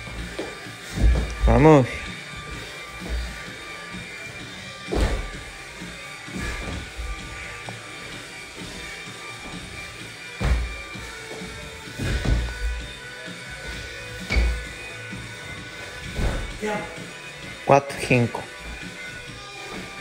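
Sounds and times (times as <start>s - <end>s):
background music: 0.0s - 20.0s
body thudding on laminate floor: 0.1s - 1.5s, 4.8s - 5.6s, 6.3s - 7.5s, 9.4s - 13.0s, 13.6s - 14.8s, 15.8s - 16.6s.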